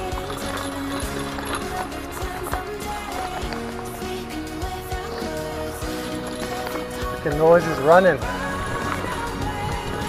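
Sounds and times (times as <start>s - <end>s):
background music: 0.0s - 10.0s
bike rolling over dirt trail: 0.0s - 10.0s.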